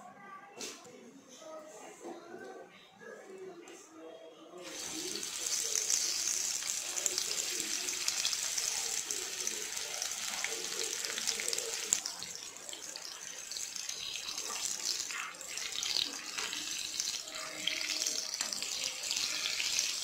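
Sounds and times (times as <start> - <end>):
fritters deep-frying in hot oil: 4.6 - 20.0.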